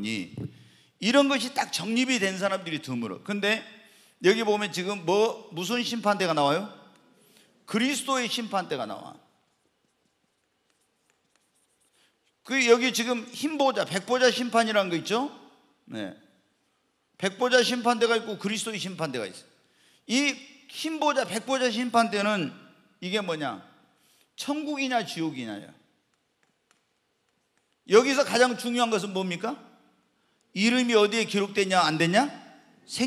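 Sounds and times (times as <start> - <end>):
man speaking: 0.0 - 6.9, 7.7 - 9.2, 12.5 - 16.2, 17.2 - 19.4, 24.4 - 25.7, 27.9 - 29.7, 30.5 - 33.0
chalk writing on a chalkboard: 9.9 - 12.4.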